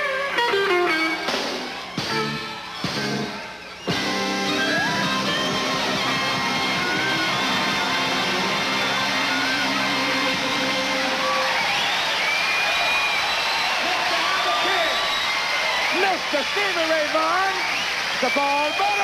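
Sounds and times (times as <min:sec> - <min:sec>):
electric guitar: 0:00.0 - 0:11.6.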